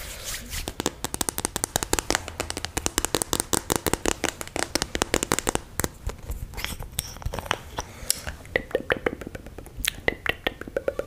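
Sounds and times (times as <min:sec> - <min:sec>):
fingernails tapping on microphone: 0:00.8 - 0:06.2.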